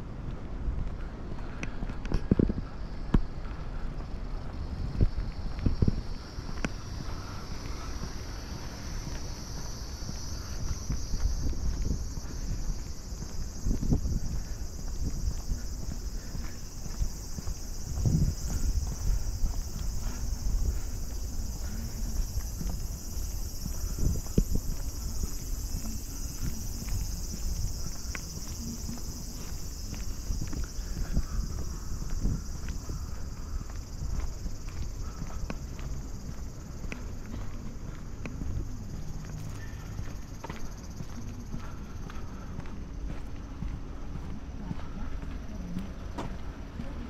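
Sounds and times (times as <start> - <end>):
cicadas droning: 0.0 - 47.0
footsteps on asphalt: 0.0 - 47.0.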